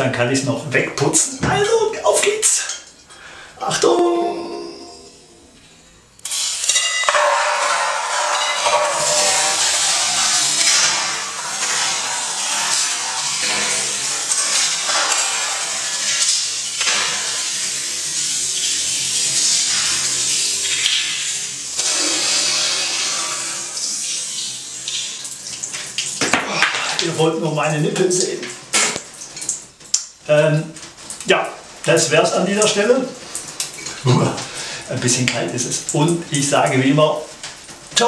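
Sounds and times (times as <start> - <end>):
water splashing into bathtub: 6.3 - 38.0.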